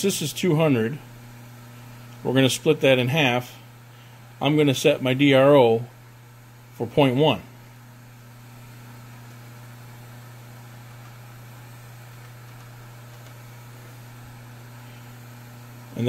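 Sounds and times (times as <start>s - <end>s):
milling machine motor humming: 0.0s - 16.0s.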